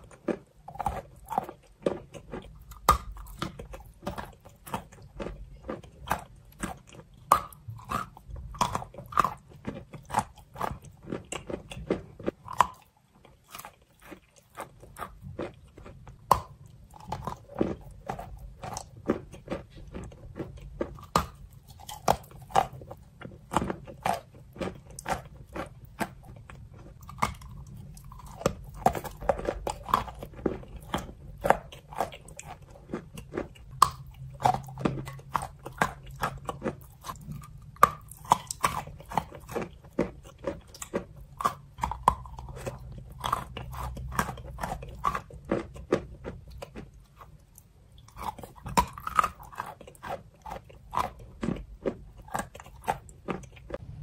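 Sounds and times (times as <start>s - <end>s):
chewing and crunching chalk: 0.0s - 54.0s.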